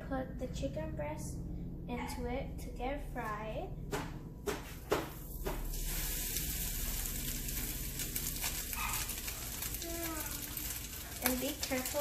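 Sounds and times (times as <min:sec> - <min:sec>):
frying sizzle with crackling: 0:05.2 - 0:12.0.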